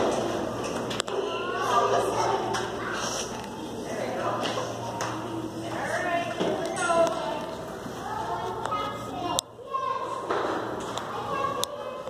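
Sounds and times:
young children babbling and calling: 0:01.0 - 0:12.0.

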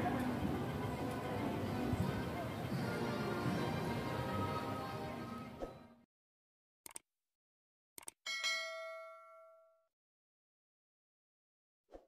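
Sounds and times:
quick clicks: 0:06.8 - 0:07.0, 0:08.0 - 0:08.2
bright bell ding: 0:08.3 - 0:09.8.

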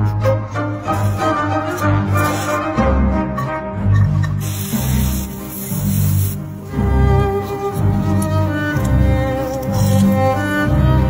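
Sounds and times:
music with low bowed strings: 0:00.0 - 0:11.0
steady hiss: 0:04.4 - 0:06.7.

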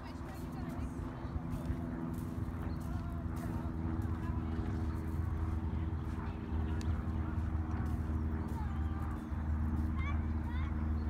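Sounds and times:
faint distant voices: 0:00.0 - 0:11.0
low droning hum: 0:00.0 - 0:11.0.

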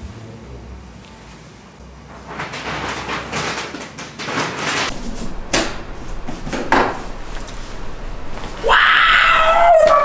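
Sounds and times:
person screaming: 0:08.6 - 0:10.0.

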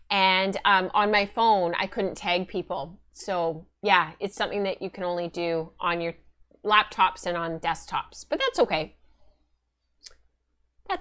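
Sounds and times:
woman speaking: 0:00.0 - 0:09.0.

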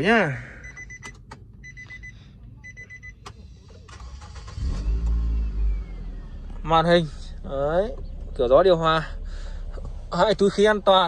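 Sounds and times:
dashboard warning chime beeping: 0:00.4 - 0:03.5
ignition key clicking: 0:00.8 - 0:01.6
car engine cranking and firing: 0:03.1 - 0:11.0.

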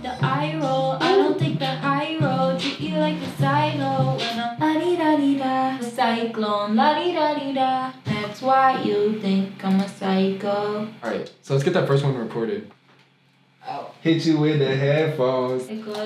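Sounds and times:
beat with bass line: 0:00.0 - 0:04.6
woman singing pop: 0:00.0 - 0:11.0.

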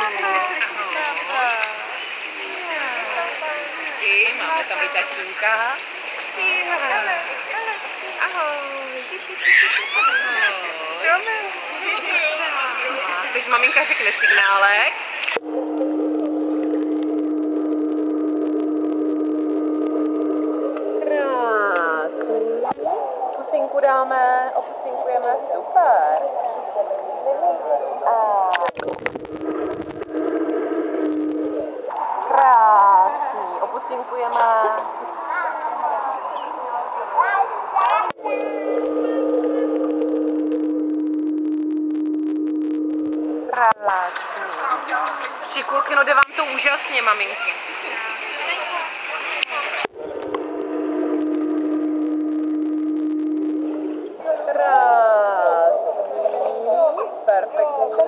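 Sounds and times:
faint higher tones: 0:15.4 - 0:22.7, 0:28.7 - 0:32.0, 0:38.2 - 0:43.7, 0:49.9 - 0:54.4
underwater pool machinery hum: 0:15.4 - 0:22.7, 0:28.6 - 0:32.2, 0:38.2 - 0:43.8, 0:49.8 - 0:54.2
underwater bubbling and crackling: 0:28.5 - 0:32.0.

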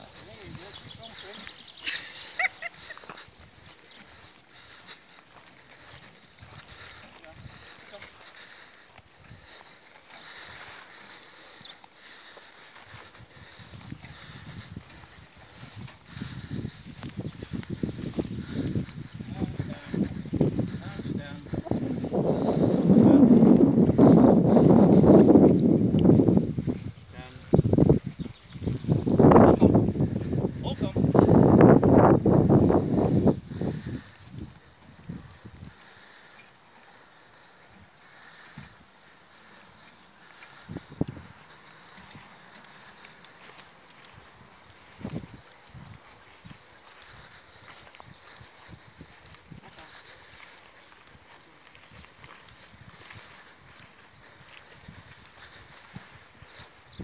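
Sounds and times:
pony hooves on grass: 0:00.0 - 0:57.0
pony hoofbeats on grass: 0:38.6 - 0:57.0.

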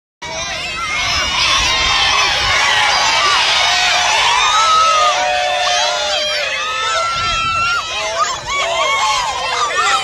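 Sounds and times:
crowd shouting and cheering: 0:00.2 - 0:10.0
long held shouts: 0:00.2 - 0:10.0.

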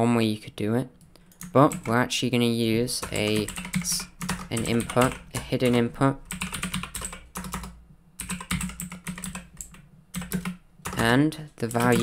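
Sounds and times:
keyboard typing: 0:03.0 - 0:12.0.

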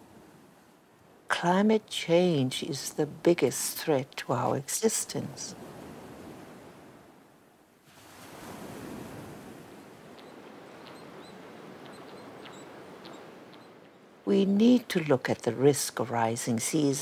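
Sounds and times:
ocean surf washing on reef: 0:03.2 - 0:16.0
faint high chirps: 0:10.1 - 0:14.0.

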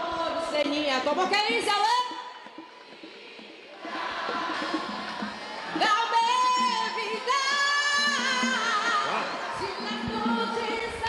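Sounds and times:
woman singing a cappella: 0:00.0 - 0:01.9, 0:05.7 - 0:11.0
crowd noise: 0:00.0 - 0:11.0.

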